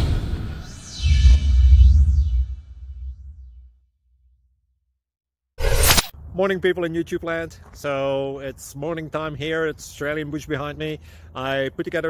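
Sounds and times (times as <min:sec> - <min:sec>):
rushing whoosh: 0:00.0 - 0:03.4
low rumbling logo sound: 0:00.0 - 0:04.5.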